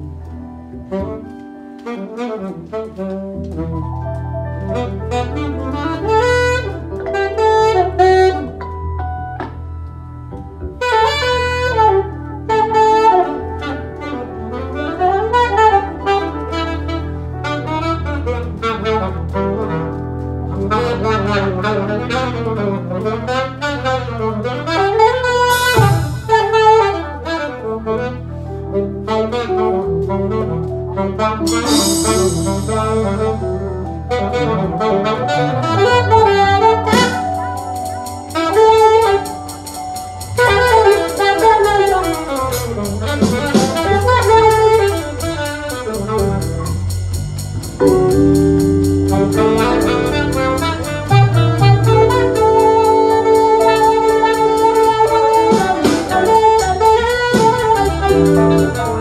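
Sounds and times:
alto saxophone melody: 0:00.0 - 0:59.0
electric bass: 0:00.0 - 0:59.0
keyboards: 0:00.0 - 0:59.0.

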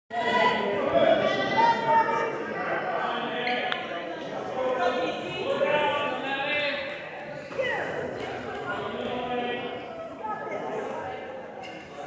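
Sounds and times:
voices talking and calling out: 0:00.1 - 0:12.0.

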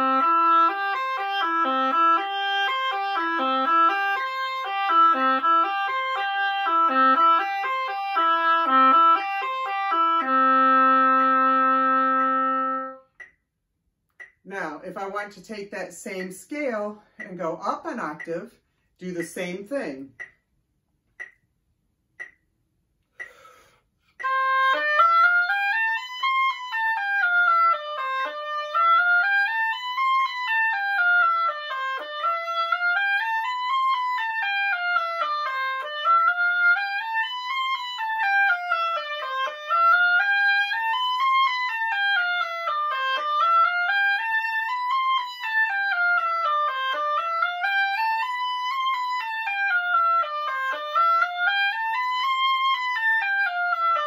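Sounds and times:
oboe playing a scale: 0:00.0 - 0:13.3, 0:24.2 - 0:54.0.

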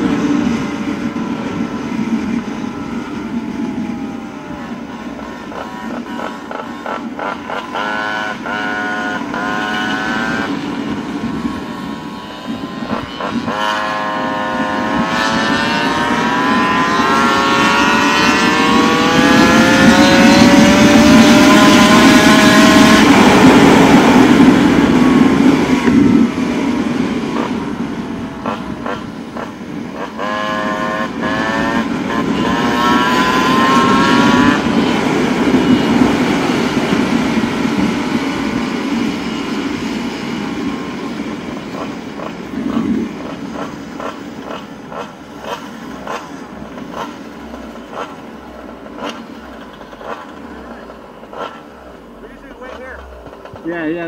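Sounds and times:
scooter engine revving: 0:00.0 - 0:54.0.

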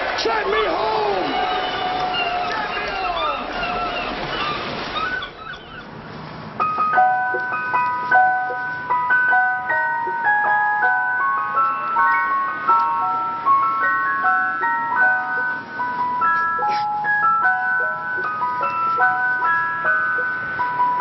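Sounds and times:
ice cream van chime tune: 0:06.5 - 0:21.0.

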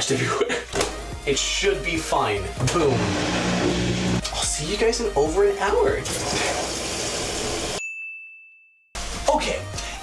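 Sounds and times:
washing machine filling with water: 0:06.0 - 0:07.8
high bell-like ding: 0:07.8 - 0:08.8.

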